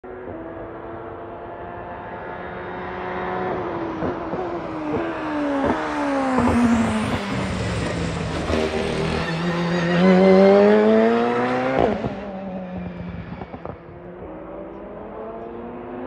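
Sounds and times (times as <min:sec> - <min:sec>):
race car engine: 0:00.0 - 0:16.0.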